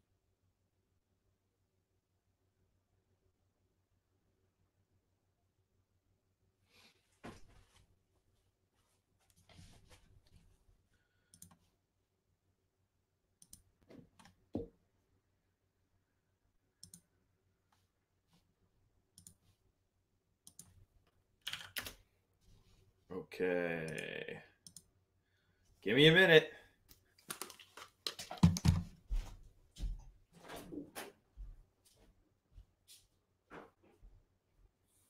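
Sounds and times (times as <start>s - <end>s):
faint clicks and taps at computer: 11.2s - 11.7s, 13.4s - 14.8s, 16.8s - 17.8s, 19.1s - 19.6s, 20.4s - 22.0s, 23.8s - 25.0s, 26.9s - 28.9s.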